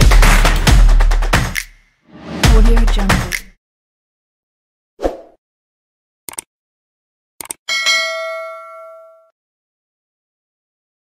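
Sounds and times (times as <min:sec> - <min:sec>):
bright bell ding: 0:07.7 - 0:09.3.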